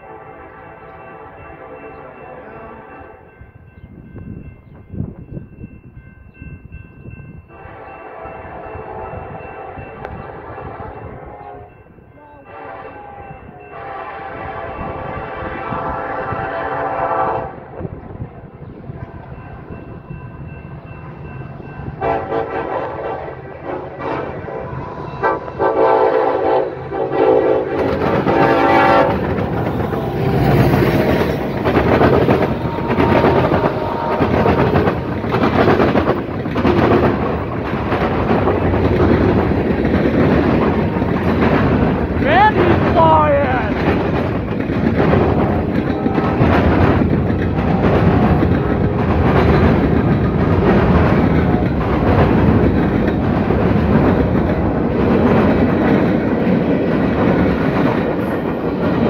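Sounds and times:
train horn blasts: 0:00.0 - 0:03.4, 0:07.5 - 0:19.8, 0:21.9 - 0:35.7, 0:45.2 - 0:49.2
diesel locomotive engines rumbling: 0:00.0 - 0:59.0
train wheels on rail: 0:02.9 - 0:59.0.

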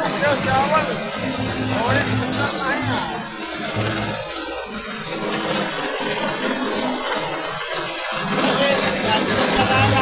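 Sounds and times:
rice mill running: 0:00.0 - 0:10.0
rice pouring from chute: 0:00.0 - 0:10.0.

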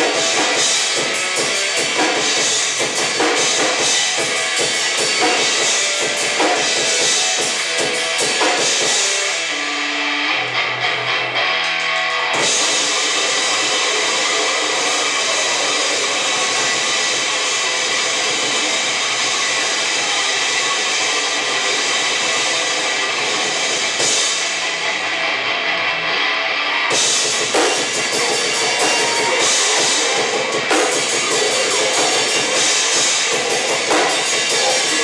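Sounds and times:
distorted electric guitar: 0:00.0 - 0:35.0
drums: 0:00.0 - 0:35.0
grindcore band playing: 0:00.0 - 0:35.0.

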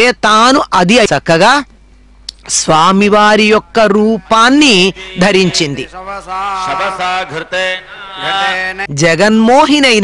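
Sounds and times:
person chanting into a microphone: 0:04.2 - 0:09.0.

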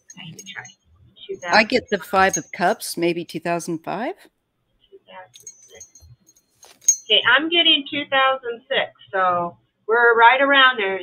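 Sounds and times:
small metal pieces jingling: 0:05.4 - 0:07.1.

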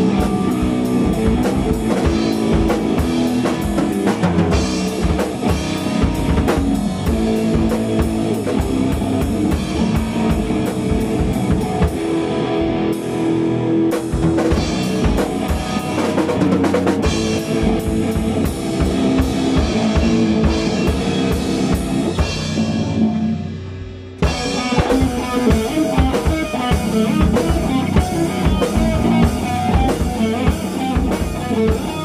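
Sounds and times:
bass guitar: 0:00.0 - 0:32.0
electric guitars: 0:00.0 - 0:32.0.

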